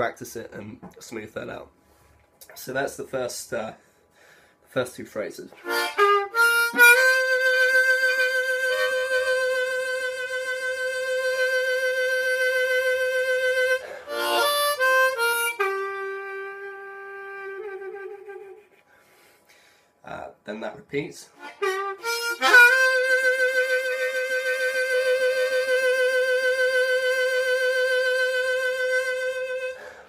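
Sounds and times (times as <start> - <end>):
harmonica playing blues: 5.6 - 19.3, 21.3 - 30.0.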